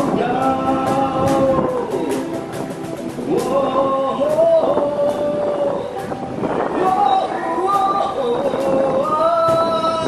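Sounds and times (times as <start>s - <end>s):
man singing through a microphone: 0.0s - 2.6s, 3.2s - 10.0s.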